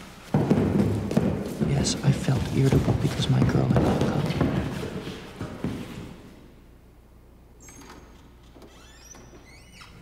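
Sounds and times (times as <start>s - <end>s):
low steady hum: 0.9s - 10.0s
door hinges creaking: 7.6s - 10.0s.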